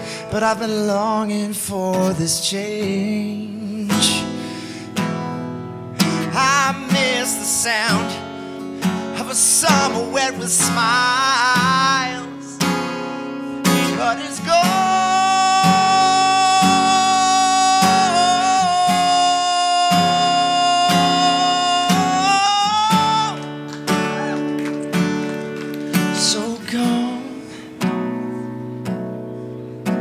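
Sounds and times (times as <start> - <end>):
man singing: 0.0 - 5.4, 6.0 - 24.4, 26.0 - 27.9
acoustic guitar strumming: 0.0 - 30.0.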